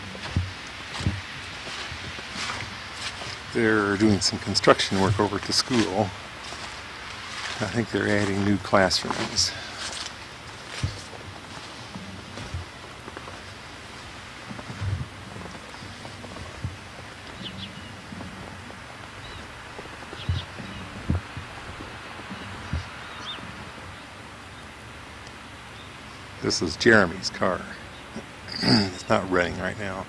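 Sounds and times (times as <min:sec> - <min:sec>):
soft low thumps: 0:00.0 - 0:25.6
steady outdoor hiss: 0:00.0 - 0:30.0.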